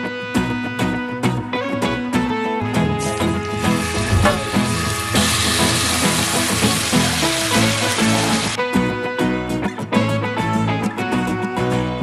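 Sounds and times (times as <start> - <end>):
background music: 0.0 - 12.0
meat sizzling in hot oil: 3.0 - 8.6.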